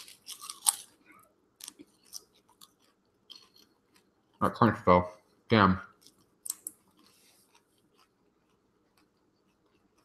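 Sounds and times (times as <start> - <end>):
person chewing crunchy food: 0.0 - 4.4, 6.0 - 10.0.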